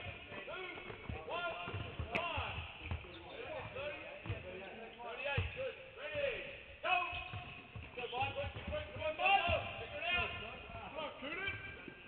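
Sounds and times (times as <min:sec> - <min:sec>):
basketballs dribbled on hardwood floor: 0:00.0 - 0:04.6, 0:07.2 - 0:10.9
short shoe squeaks: 0:03.0 - 0:03.6.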